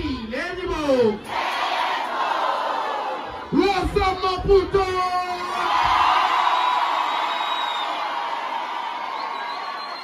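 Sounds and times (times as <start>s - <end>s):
crowd cheering and screaming: 5.2s - 10.0s.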